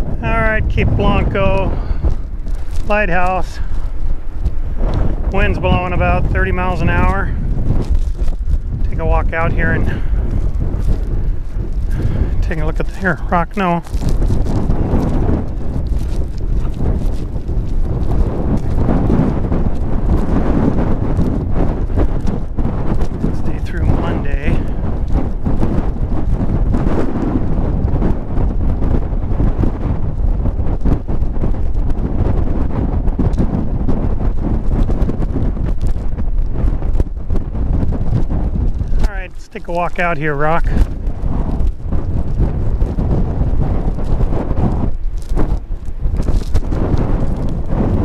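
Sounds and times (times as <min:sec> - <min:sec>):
wind buffeting microphone: 0:00.0 - 0:48.0.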